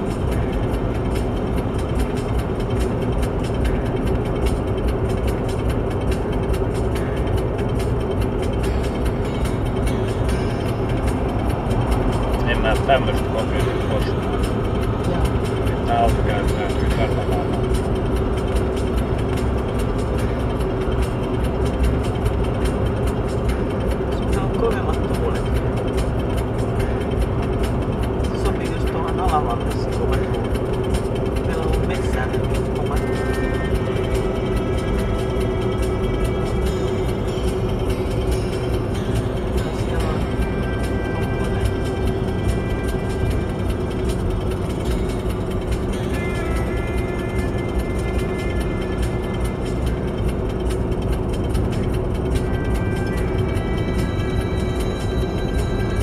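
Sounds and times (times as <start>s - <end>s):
road and tyre noise: 0.0s - 56.0s.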